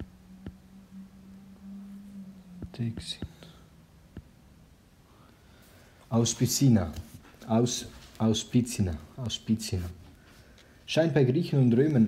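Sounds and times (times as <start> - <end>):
man whispering: 2.6 - 3.7.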